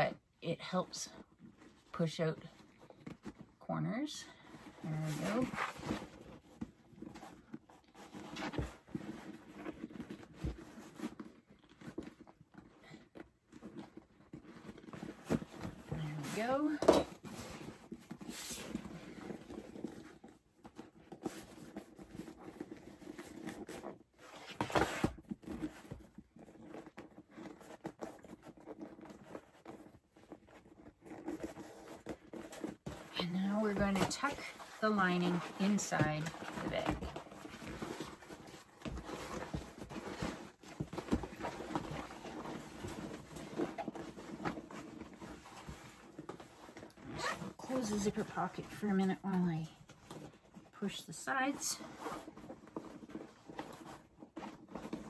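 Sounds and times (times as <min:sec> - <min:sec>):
stiff material rustling: 0:01.2 - 0:55.0.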